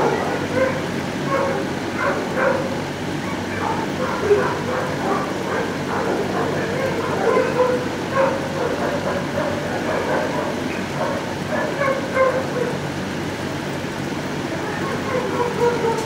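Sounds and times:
many dogs barking and yipping: 0:00.0 - 0:13.5, 0:14.2 - 0:16.0.

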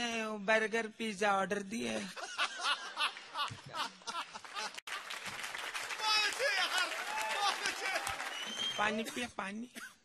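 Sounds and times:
applause: 0:04.2 - 0:09.2.

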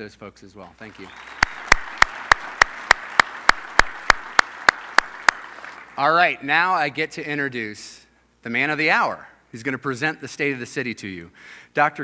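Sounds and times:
close hand clapping: 0:00.6 - 0:06.2
audience applauding: 0:00.8 - 0:06.4.

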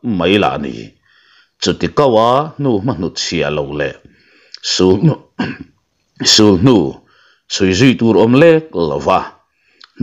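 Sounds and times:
person narrating a story: 0:01.6 - 0:05.3.

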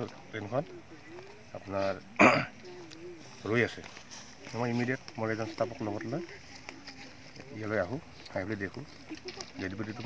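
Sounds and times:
man clearing his throat: 0:02.2 - 0:02.5.

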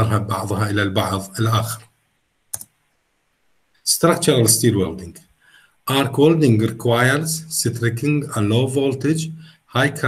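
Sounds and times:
man's voice: 0:00.0 - 0:01.9, 0:03.9 - 0:05.2, 0:05.9 - 0:10.0
computer click: 0:02.5 - 0:02.8.

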